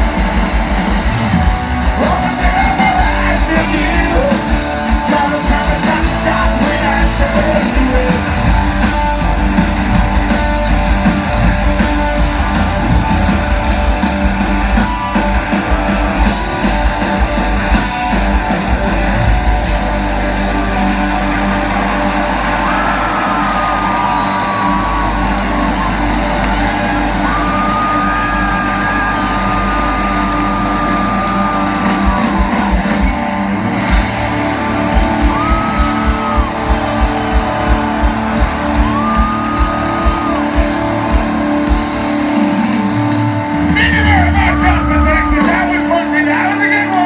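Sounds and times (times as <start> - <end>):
electric guitars playing: 0.0 - 47.0.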